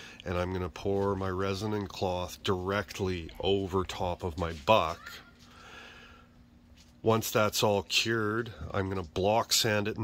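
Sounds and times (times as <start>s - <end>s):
thin steady room hum: 0.0s - 10.0s
faint breath: 5.4s - 6.4s.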